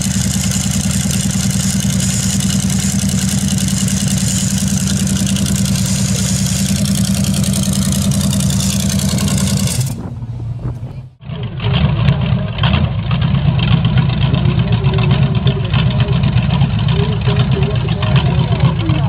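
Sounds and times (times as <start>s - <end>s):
engine idling through open exhaust: 0.0s - 19.0s.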